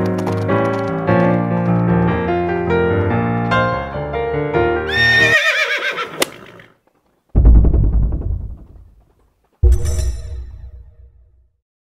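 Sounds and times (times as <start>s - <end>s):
music: 0.0s - 5.4s, 7.4s - 9.0s, 9.6s - 11.6s
horse whinnying: 4.9s - 6.8s
loud low boom: 7.4s - 9.0s.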